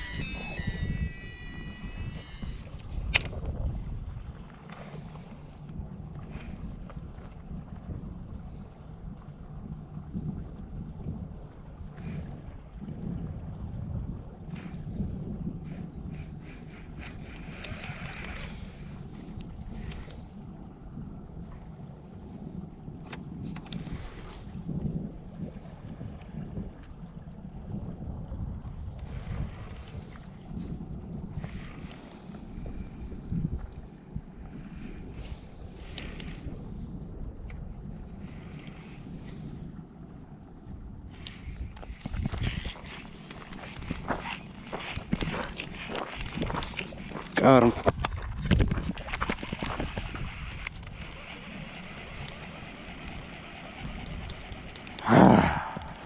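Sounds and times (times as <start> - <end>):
fishing rod and reel rustling: 0.0 - 7.9, 14.5 - 20.5, 23.0 - 24.6, 29.0 - 39.7, 41.1 - 56.0
wind buffeting microphone: 0.0 - 56.0.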